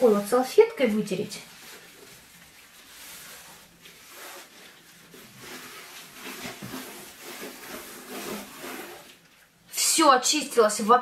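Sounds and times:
napkin rubbing metal tray: 1.5 - 9.2.

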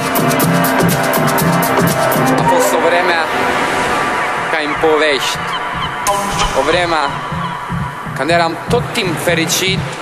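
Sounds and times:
electronic dance music: 0.0 - 10.0
downward sliding synth sounds: 2.2 - 8.7.

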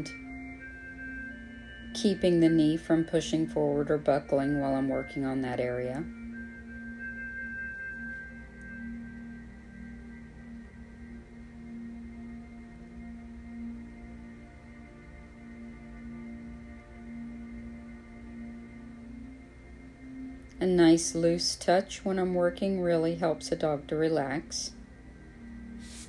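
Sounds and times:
soft ambient music: 0.0 - 26.0.

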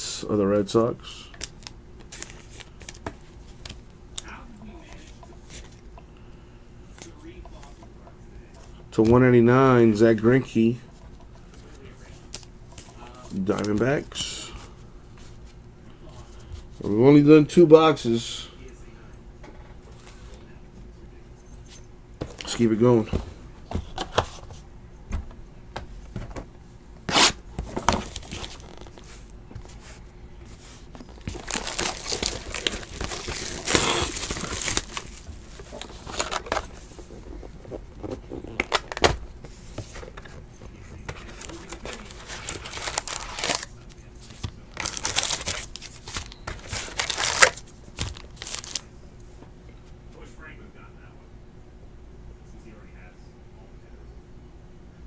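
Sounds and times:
plastic shrink wrap crinkling: 27.9 - 29.3, 30.6 - 39.0, 41.2 - 48.9.

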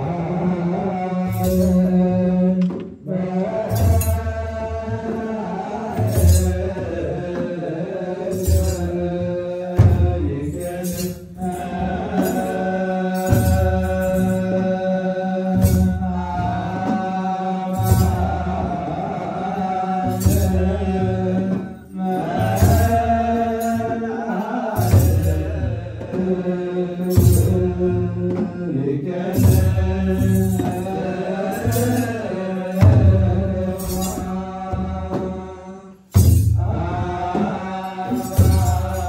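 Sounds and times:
male voices chanting a hymn: 0.0 - 39.0
deep drum beat: 1.4 - 14.9, 24.6 - 39.0.

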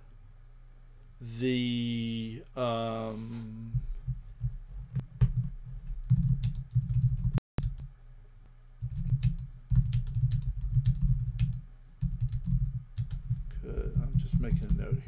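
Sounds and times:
typing on computer keyboard: 5.4 - 7.9, 8.8 - 13.3, 13.9 - 15.0.

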